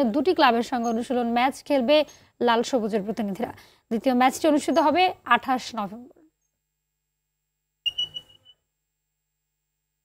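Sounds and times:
background noise: 0.0 - 6.6, 7.8 - 8.7
high-pitched whistle blast: 7.8 - 8.6.

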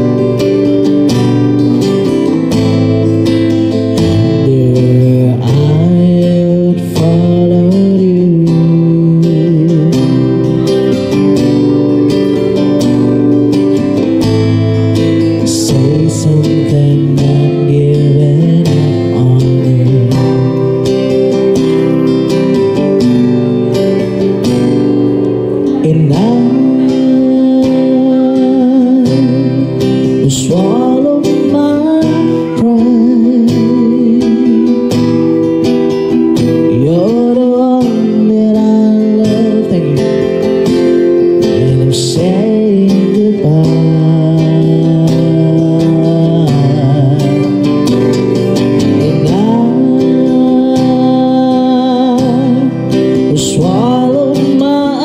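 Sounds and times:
acoustic guitar: 0.0 - 55.0
man singing with vibrato: 0.0 - 55.0.

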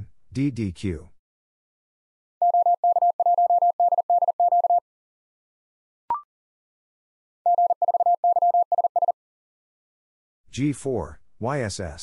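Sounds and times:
morse code beeps: 2.4 - 4.8, 7.5 - 9.2.

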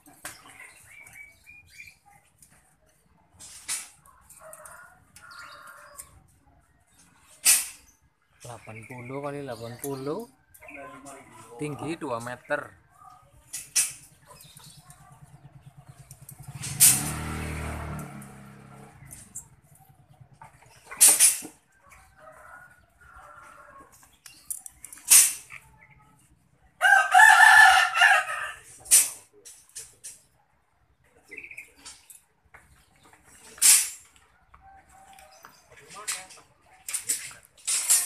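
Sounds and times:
rooster crowing: 26.8 - 28.7.

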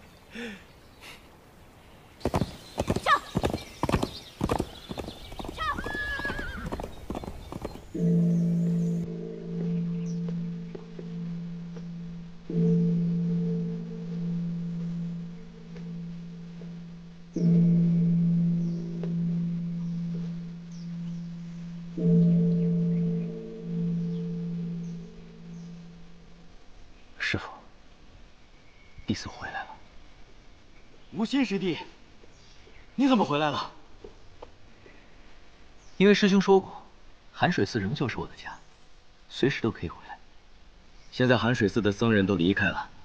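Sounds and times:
horse galloping: 2.2 - 9.0
horse whinny: 5.5 - 7.7
large temple bell ringing deep: 8.0 - 26.4.

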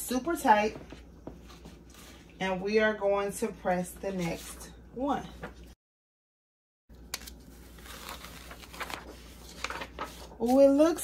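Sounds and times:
paper rustling and crinkling: 7.2 - 10.9.

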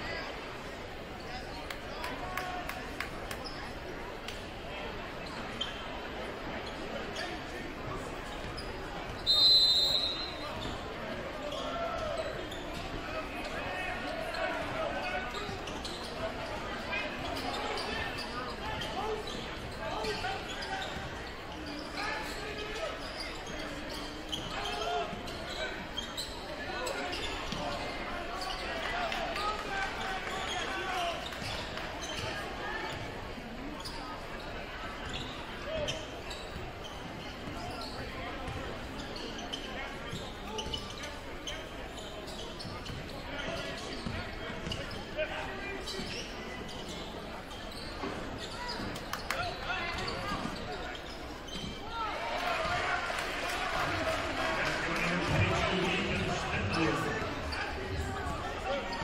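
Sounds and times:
crowd talking and calling out: 0.0 - 59.0.

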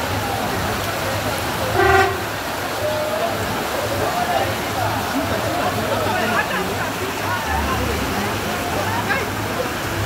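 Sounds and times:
floodwater rushing along gutter: 0.0 - 10.0
vehicle horn toot: 1.8 - 2.3.

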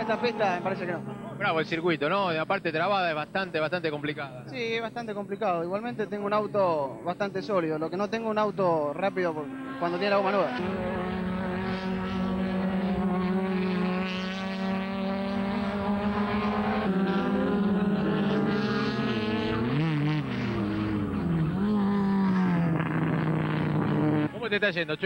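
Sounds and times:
race car engines at high revs: 0.0 - 24.6.

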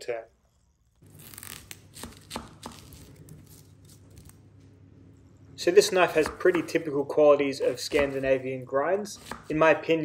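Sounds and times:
knife slicing onion on wooden board: 1.6 - 4.3, 7.6 - 8.4, 9.1 - 9.7.

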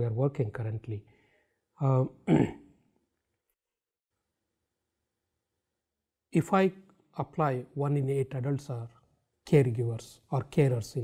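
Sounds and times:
man clearing his throat: 2.2 - 2.8.

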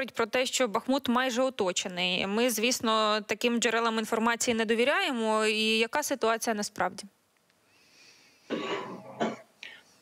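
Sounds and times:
man clearing his throat: 8.5 - 9.5.

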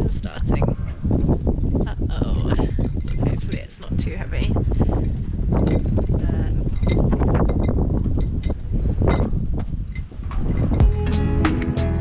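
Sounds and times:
woman's wordless voice: 0.0 - 0.8, 1.8 - 4.8, 6.1 - 6.7
wind buffeting microphone: 0.0 - 10.9.

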